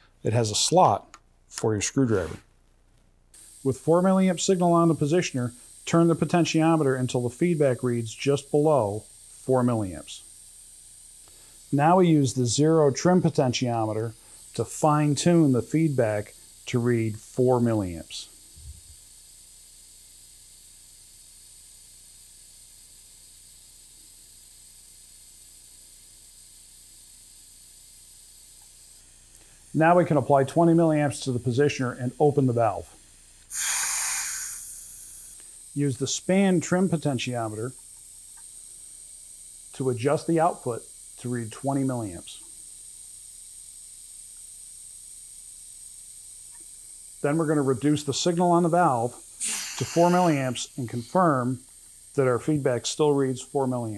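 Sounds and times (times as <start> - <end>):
faint steady hiss: 0.0 - 53.9
faint high whine: 23.1 - 53.9.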